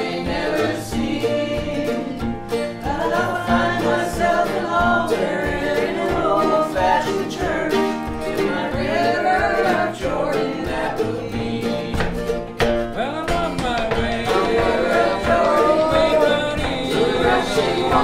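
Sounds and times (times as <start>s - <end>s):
acoustic guitars strumming: 0.0s - 18.0s
mandolin: 0.0s - 18.0s
voices singing together: 0.0s - 18.0s.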